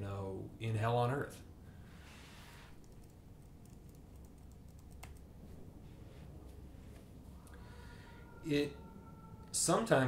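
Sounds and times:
faint clicks: 2.8 - 5.3.

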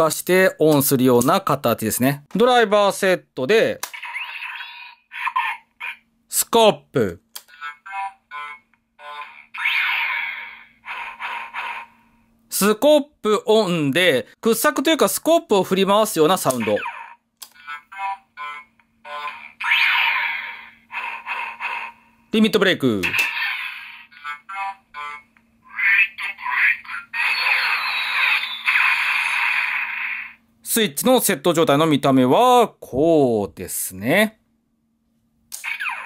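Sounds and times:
toy electronic sound effect: 3.8 - 6.0, 7.5 - 12.1, 16.4 - 22.1, 23.0 - 30.4, 35.6 - 36.0
low electronic hum: 24.1 - 29.4.

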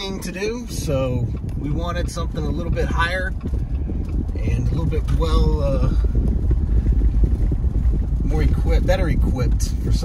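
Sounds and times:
tyres on dirt road: 0.0 - 10.0
vehicle engine rumble: 0.0 - 10.0.

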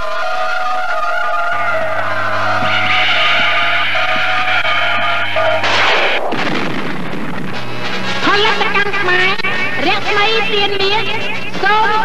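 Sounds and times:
synthesized music: 0.0 - 12.0
explosion-like noise effect: 1.6 - 8.8.

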